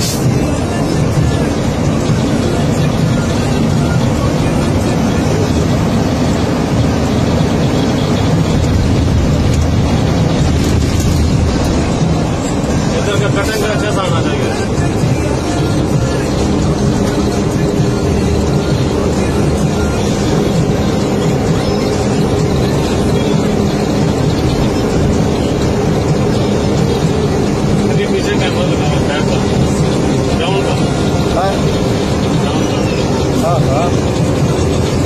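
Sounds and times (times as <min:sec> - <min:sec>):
diesel engine droning: 0:00.0 - 0:35.0
road and cab noise: 0:00.0 - 0:35.0.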